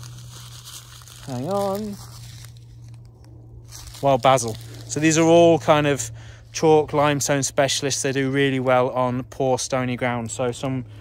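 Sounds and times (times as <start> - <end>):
seed packets rustling: 0.0 - 5.7
low hum: 0.0 - 11.0.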